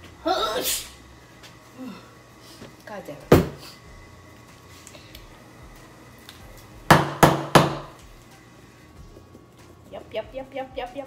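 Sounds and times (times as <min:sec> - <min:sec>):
object knocking on kitchen surface: 0:03.3 - 0:03.6, 0:06.9 - 0:07.9.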